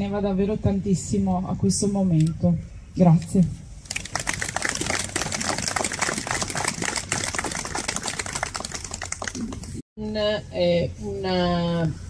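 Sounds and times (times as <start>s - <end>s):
crowd applauding: 3.9s - 9.8s.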